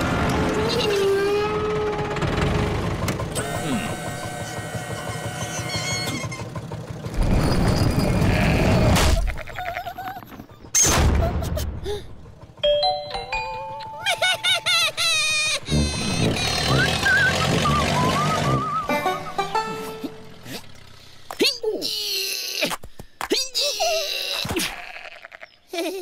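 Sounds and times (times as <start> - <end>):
bleat-like character voices: 3.4 - 4.1, 23.4 - 25.6
cartoon music: 12.6 - 20.4.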